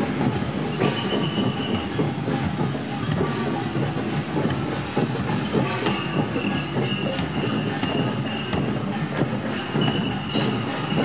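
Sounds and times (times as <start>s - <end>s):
truck rattling clatter: 0.0s - 11.0s.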